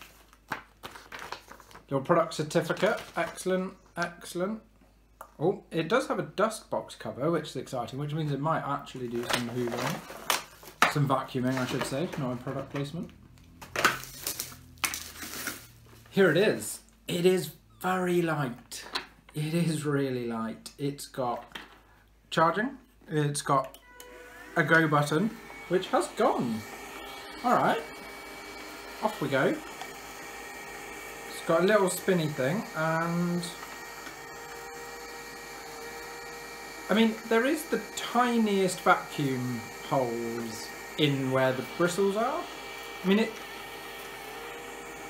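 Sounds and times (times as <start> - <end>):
plastic wrapping crinkling: 0.0 - 1.9, 9.1 - 10.9, 13.5 - 16.1
robot vacuum motor hum: 23.9 - 45.0.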